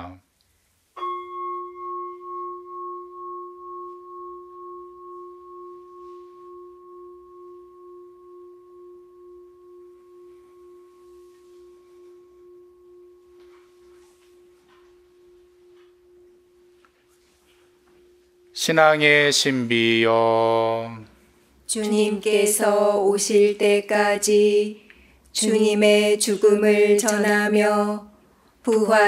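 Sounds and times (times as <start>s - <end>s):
deep bell ringing: 1.0s - 19.8s.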